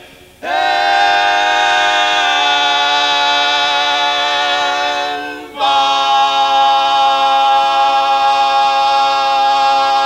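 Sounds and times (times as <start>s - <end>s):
men's voices holding a chord: 0.0s - 10.0s.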